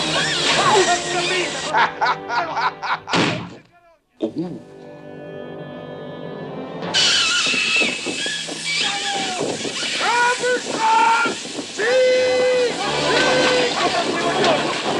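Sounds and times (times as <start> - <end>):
film music: 0.0 - 3.4, 4.2 - 9.4, 11.4 - 14.9
loud rush of noise: 7.0 - 14.9
water splashing: 7.0 - 14.9
people shouting: 8.5 - 14.7.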